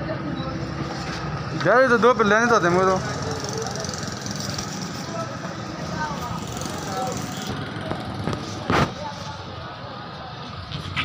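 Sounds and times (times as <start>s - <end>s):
faint indistinct voices: 0.0s - 11.0s
steady background noise: 0.0s - 11.0s.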